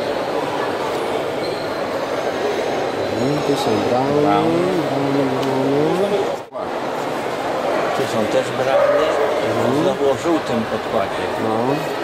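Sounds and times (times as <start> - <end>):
busy exhibition hall din: 0.0 - 12.0.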